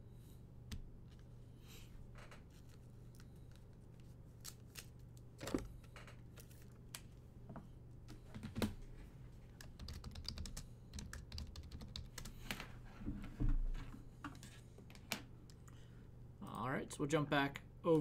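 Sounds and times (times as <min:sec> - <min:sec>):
typing on computer keyboard: 0:09.6 - 0:12.4.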